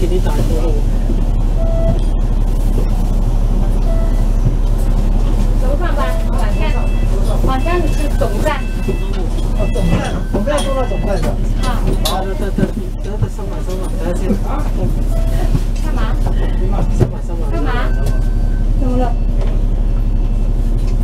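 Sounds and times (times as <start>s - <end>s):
bus engine idling: 0.0s - 21.0s
passengers talking: 0.0s - 21.0s.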